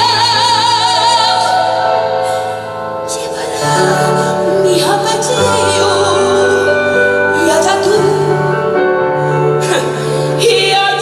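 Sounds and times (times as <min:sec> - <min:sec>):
piano accompaniment: 0:00.0 - 0:11.0
woman singing: 0:00.0 - 0:11.0.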